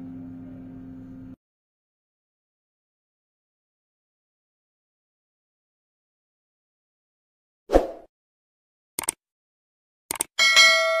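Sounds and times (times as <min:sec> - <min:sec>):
double mouse clicks: 0:09.0 - 0:09.2, 0:10.1 - 0:10.3
bell chime ringing: 0:10.4 - 0:11.0.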